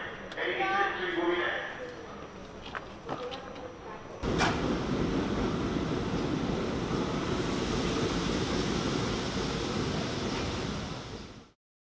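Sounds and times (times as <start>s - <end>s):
subway train running on rails: 4.2s - 11.6s.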